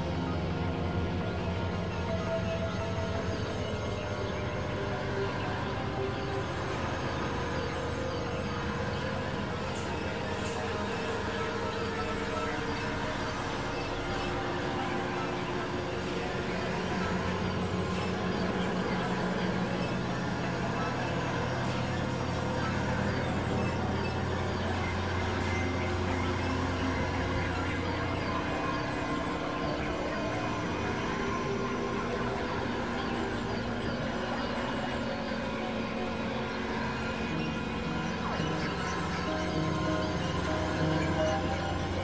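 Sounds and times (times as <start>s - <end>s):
electronic drone music: 0.0s - 42.0s.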